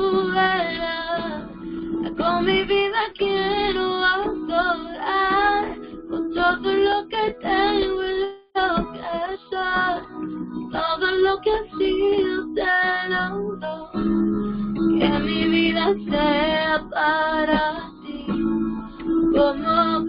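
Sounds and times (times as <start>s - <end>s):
guitar accompaniment: 0.0s - 20.0s
high voice singing worship song: 0.0s - 20.0s.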